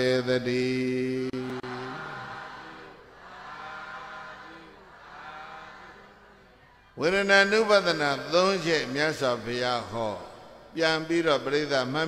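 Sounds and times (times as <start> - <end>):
faint chanting voices: 0.0 - 12.0.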